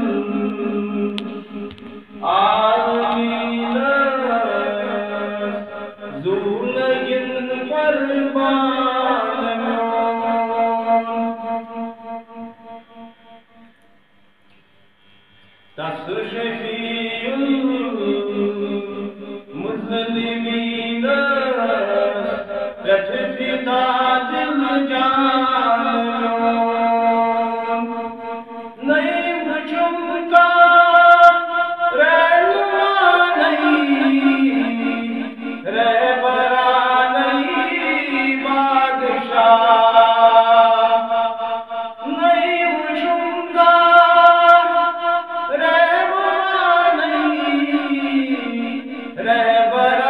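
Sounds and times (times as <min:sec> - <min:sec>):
man chanting: 0:00.0 - 0:13.4, 0:15.8 - 0:50.0.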